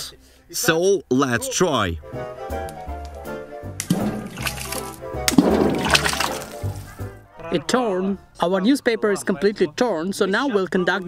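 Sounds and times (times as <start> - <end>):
background music: 0.0 - 11.0
tomato splashing into water: 3.8 - 6.9.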